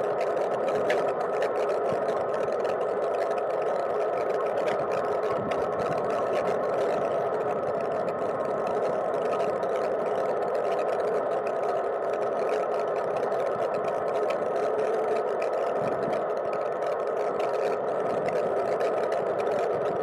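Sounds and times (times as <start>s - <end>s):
bike frame ticks and rattles: 0.0s - 20.0s
tyre and wind noise: 4.6s - 9.8s, 15.8s - 16.2s.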